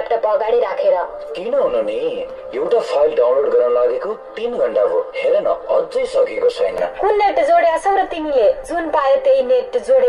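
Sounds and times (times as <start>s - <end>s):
people talking: 2.6s - 10.0s.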